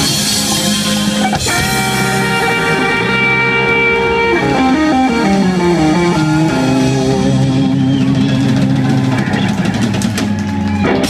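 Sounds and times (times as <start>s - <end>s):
bass guitar sustained notes: 0.0s - 11.0s
electric guitar sustained notes: 0.0s - 11.0s.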